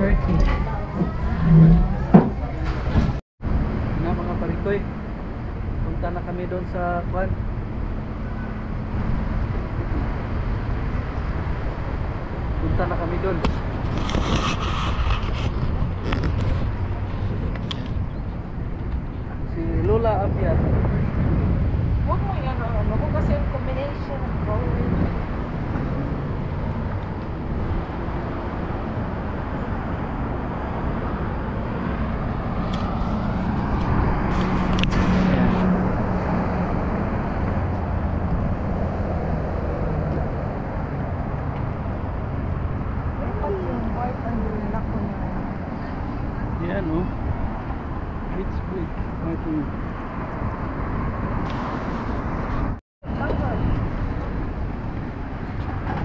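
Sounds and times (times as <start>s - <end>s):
moving air: 0.0s - 4.2s, 7.2s - 44.0s
road traffic rumble: 0.0s - 56.0s.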